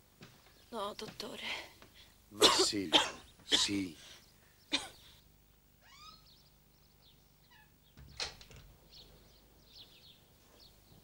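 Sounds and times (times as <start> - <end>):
animal chirping calls: 5.8 - 6.4, 7.4 - 7.8.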